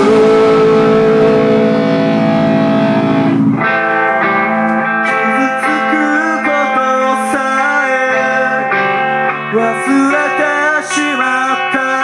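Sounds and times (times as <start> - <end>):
live rock band: 0.0 - 12.0
picked guitar notes: 0.0 - 12.0.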